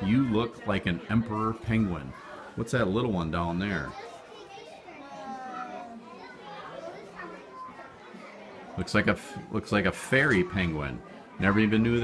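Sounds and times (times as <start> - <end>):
faint children talking: 0.0 - 12.0.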